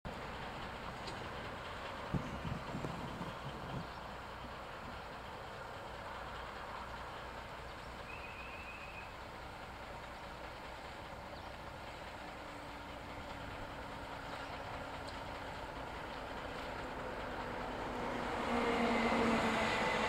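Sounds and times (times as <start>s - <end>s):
diesel locomotive idling: 0.1s - 20.0s.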